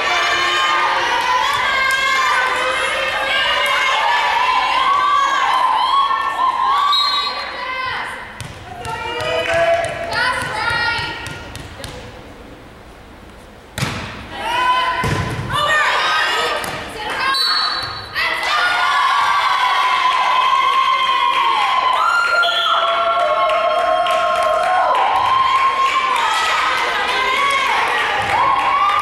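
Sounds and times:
crowd cheering: 0.0 - 10.9, 14.3 - 29.0
players shouting: 0.0 - 11.2, 14.3 - 29.0
volleyball struck with thud: 13.8 - 14.3, 15.0 - 15.6.

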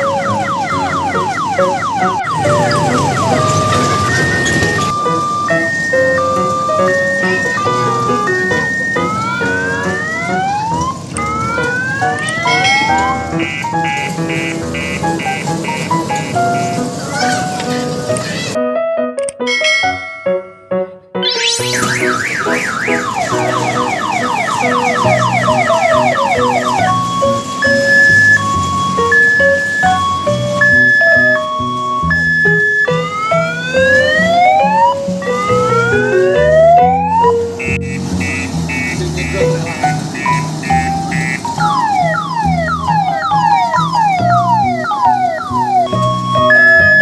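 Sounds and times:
long rising siren whoops: 0.0 - 13.6, 21.2 - 37.5, 41.6 - 47.0
two-tone hi-lo siren: 0.0 - 16.8, 21.2 - 47.0
rising siren wail: 0.0 - 17.3, 21.2 - 47.0
background music: 0.0 - 47.0.

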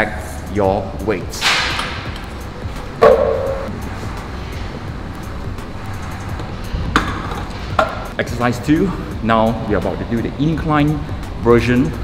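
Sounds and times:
background music: 0.0 - 12.0
weight plate knock: 3.0 - 3.7.

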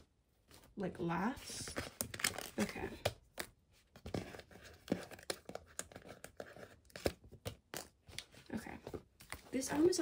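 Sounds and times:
paper and cardboard rustling: 3.8 - 10.0.

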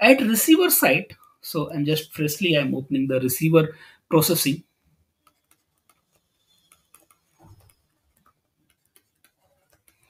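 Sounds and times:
stylus tapping on tablet: 5.2 - 10.0.

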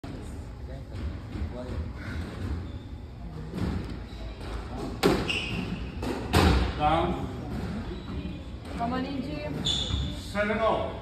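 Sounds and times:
squash ball impacts: 3.5 - 10.1.

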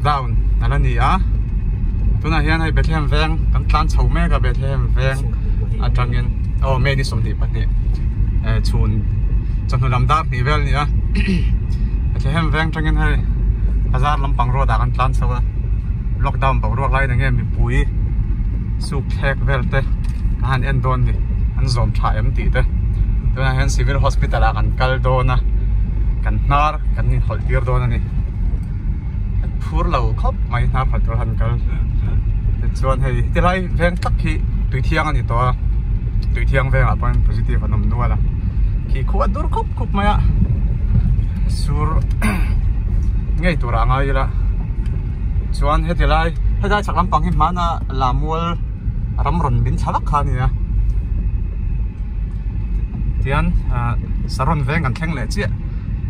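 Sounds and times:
people talking: 0.0 - 1.3, 2.2 - 7.7, 8.4 - 9.1, 9.7 - 11.5, 12.2 - 13.2, 13.9 - 15.4, 16.2 - 17.9, 18.8 - 22.7, 23.4 - 25.4, 26.2 - 28.0, 29.4 - 35.6, 36.2 - 38.2, 38.9 - 40.4, 41.5 - 42.6, 43.4 - 44.4, 45.5 - 48.6, 49.2 - 50.5, 53.2 - 55.5
car engine rumble and road noise: 0.0 - 56.0
man talking: 2.2 - 7.7, 26.2 - 28.1, 49.2 - 50.6, 53.2 - 55.5.

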